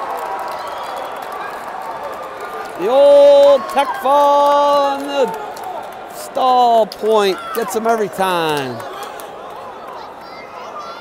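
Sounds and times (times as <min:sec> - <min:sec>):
man's loud voice: 0:02.8 - 0:05.3, 0:06.2 - 0:08.8.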